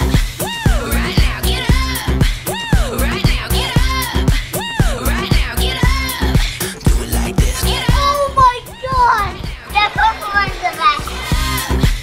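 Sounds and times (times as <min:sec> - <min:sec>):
background music: 0:00.0 - 0:12.0
children calling out excitedly: 0:07.9 - 0:11.2.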